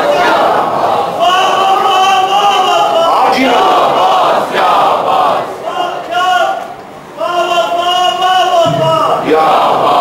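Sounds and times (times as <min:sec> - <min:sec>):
crowd of men shouting: 0:00.0 - 0:10.0.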